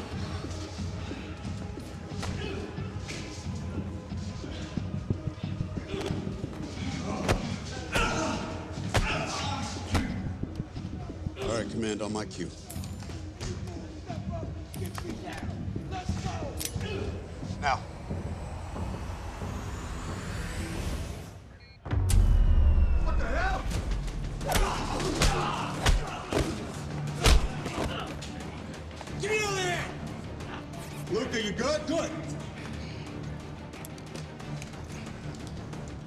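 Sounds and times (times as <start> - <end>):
low droning music: 0.0 - 36.0
men shouting: 5.8 - 10.4, 23.2 - 28.3.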